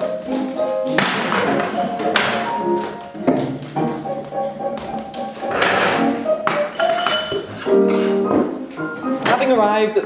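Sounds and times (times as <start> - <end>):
footsteps and taps on stage: 0.0 - 5.5
live piano music: 0.0 - 10.0.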